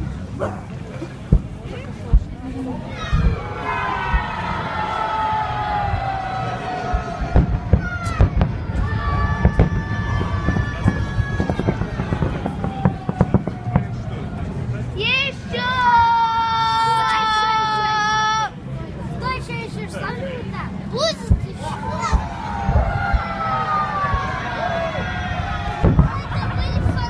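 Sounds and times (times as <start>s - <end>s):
crowd shouting high-pitched: 2.8s - 13.9s, 15.0s - 18.6s, 21.5s - 27.0s
fireworks crackling: 5.7s - 14.7s, 21.2s - 27.0s.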